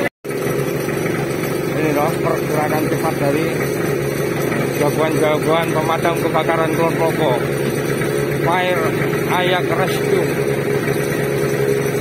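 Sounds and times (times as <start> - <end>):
diesel engine running steadily: 0.0 - 12.0.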